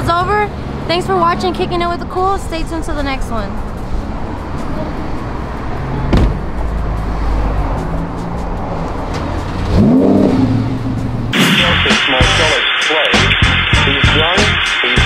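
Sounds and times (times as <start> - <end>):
car engine revving: 3.7 - 15.0
static glitch noise: 11.4 - 15.0.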